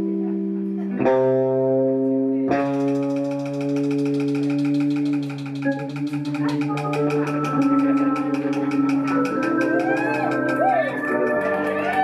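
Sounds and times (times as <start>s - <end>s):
cymbal ticks: 2.6s - 10.7s.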